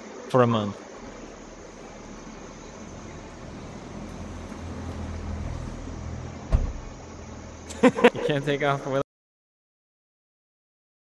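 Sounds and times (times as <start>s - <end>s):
low hum: 0.9s - 8.7s
sharp thud: 1.0s - 7.7s.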